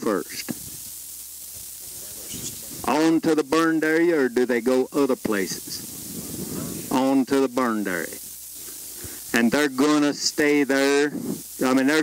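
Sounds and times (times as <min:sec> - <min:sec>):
faint outdoor hiss: 0:00.0 - 0:12.0
person speaking: 0:01.7 - 0:12.0.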